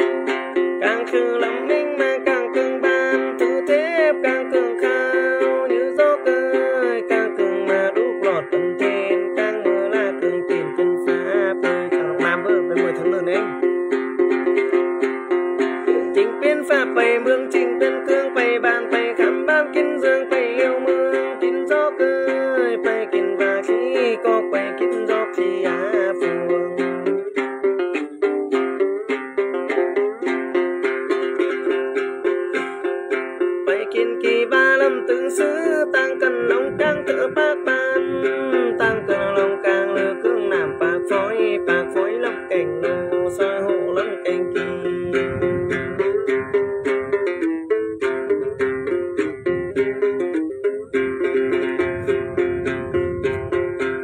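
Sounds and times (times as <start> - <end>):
plucked lute melody: 0.0 - 54.0.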